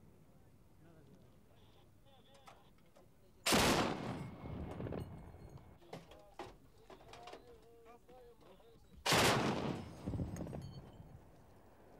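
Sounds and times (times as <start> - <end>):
heavy gunfire burst: 3.5 - 4.4, 9.1 - 10.1.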